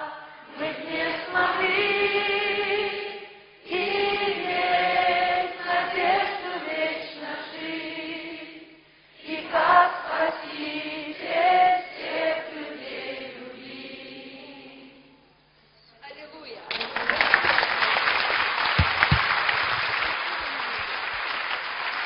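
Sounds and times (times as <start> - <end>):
choir singing a hymn: 0.0 - 15.2.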